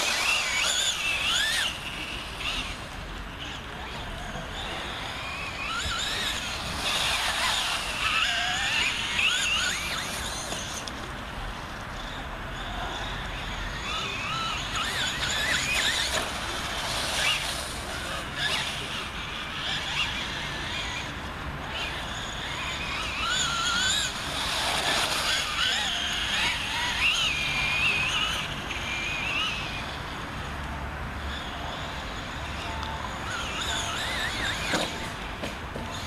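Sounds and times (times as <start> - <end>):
toy truck motor whining: 0.0 - 36.0.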